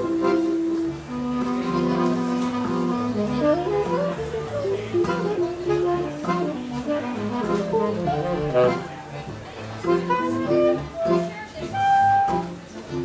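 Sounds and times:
accordion: 0.0 - 13.0
tenor saxophone: 0.0 - 13.0.

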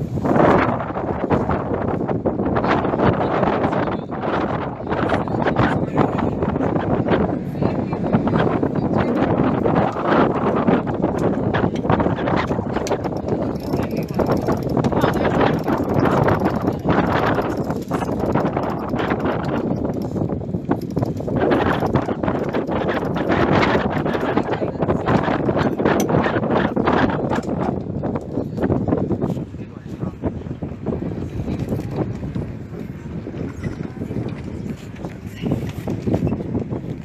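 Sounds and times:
sail flapping and knocking: 0.0 - 37.0
wind buffeting microphone: 0.0 - 37.0
indistinct voices: 2.6 - 20.0.

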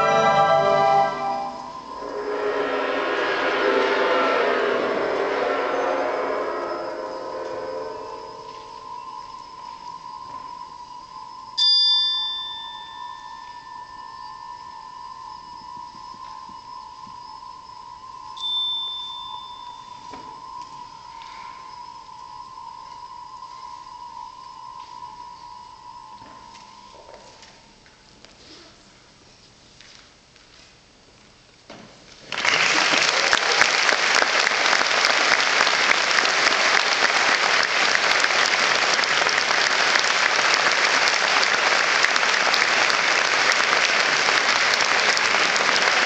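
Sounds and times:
bell-like metallic percussion: 0.0 - 2.3, 4.7 - 27.6
concert band chord: 0.0 - 8.2
soft sustained high note: 0.0 - 28.0.

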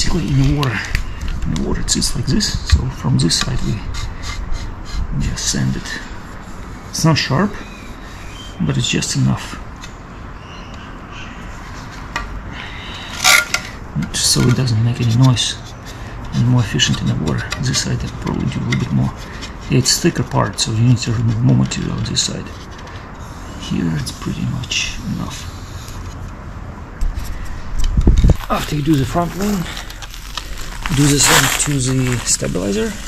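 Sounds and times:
low room noise: 0.0 - 33.0
handling rumble: 25.1 - 33.0
scraping rustle: 27.0 - 33.0.

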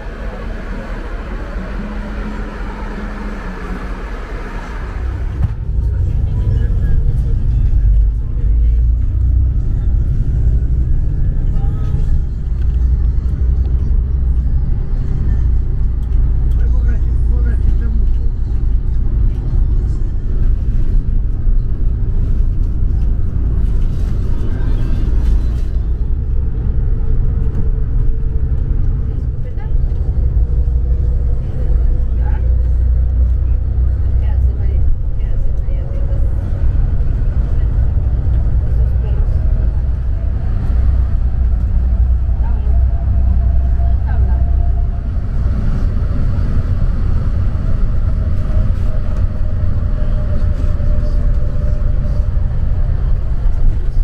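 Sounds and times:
bus engine rumble: 0.0 - 54.0
road noise: 0.0 - 54.0.

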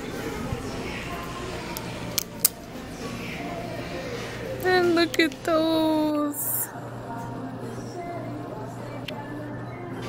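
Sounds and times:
store background murmur: 0.0 - 10.0.

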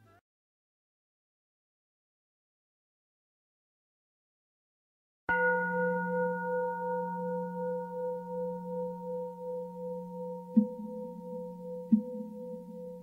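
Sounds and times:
singing bowl ringing: 5.3 - 13.0
soft knocks on singing bowl: 5.3 - 13.0.

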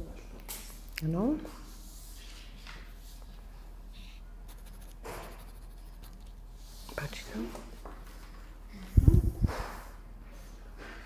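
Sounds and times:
pen scrape: 4.5 - 6.2.

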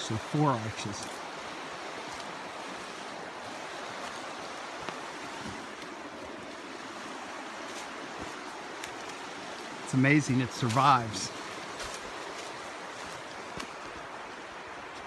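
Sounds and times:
stream of running water: 0.0 - 15.0.

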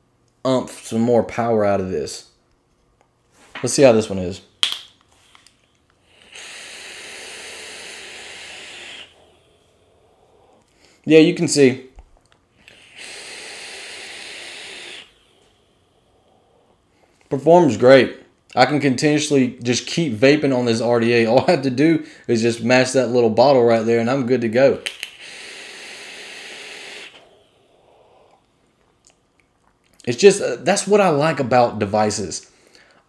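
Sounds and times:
air hissing through vape atomizer: 5.1 - 11.8, 12.6 - 17.3, 24.7 - 29.0.

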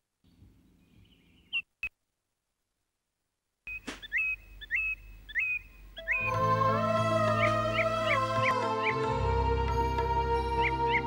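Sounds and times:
bird whistling call: 3.7 - 6.3.

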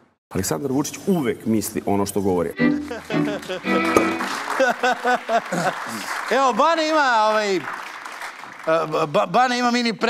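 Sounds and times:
studio audience applause: 2.6 - 9.9.

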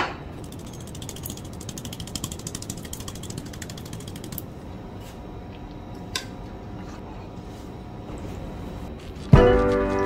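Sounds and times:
rapid mechanical clicks: 0.4 - 4.4.

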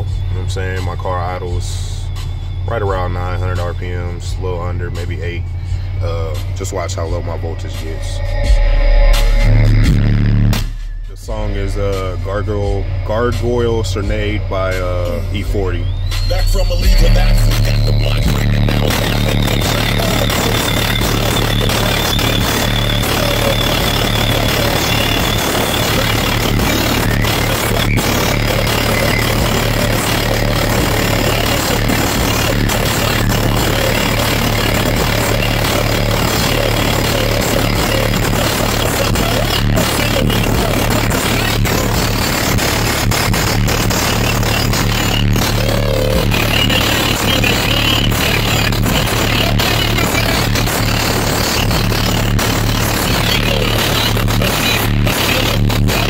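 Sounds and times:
car engine idling: 0.0 - 55.0
bass-heavy rap music: 0.0 - 56.0.

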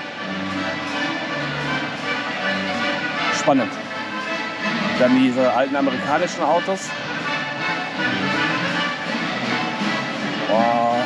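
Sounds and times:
slow music with held notes: 6.9 - 11.0.

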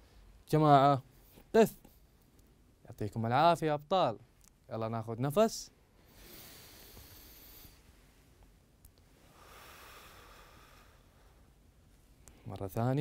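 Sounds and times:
man breathing deeply: 5.9 - 8.0, 9.2 - 11.6.

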